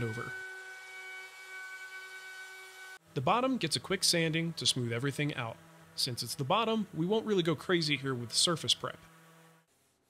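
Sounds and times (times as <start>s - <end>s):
router high-pitched whine: 0.0s - 9.7s.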